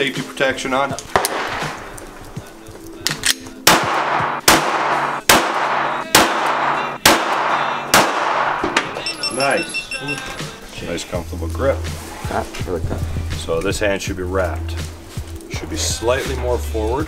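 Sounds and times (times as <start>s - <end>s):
background music: 0.0s - 17.0s
pistol shots with echo: 1.1s - 1.9s, 3.1s - 9.0s.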